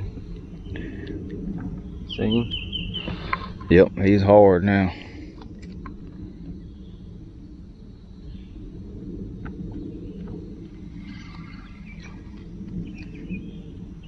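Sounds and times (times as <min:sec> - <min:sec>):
low open-air rumble: 0:00.0 - 0:14.0
faint bird chirps: 0:01.8 - 0:03.6, 0:09.7 - 0:13.9.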